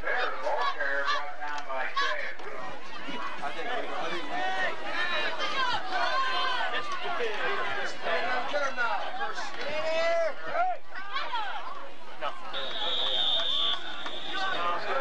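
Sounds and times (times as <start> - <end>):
football crowd babble: 0.0 - 15.0.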